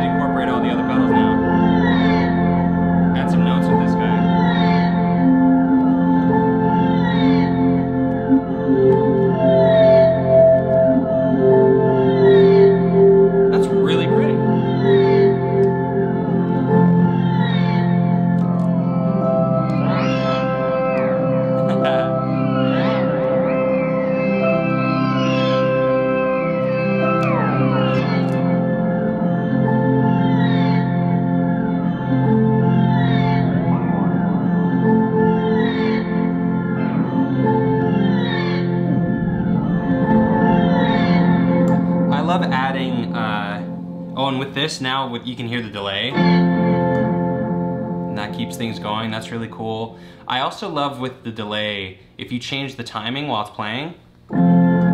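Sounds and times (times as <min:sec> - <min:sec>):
pitch glides: 0:00.0 - 0:49.8
organ-like drone chords: 0:00.0 - 0:51.2, 0:53.6 - 0:54.9.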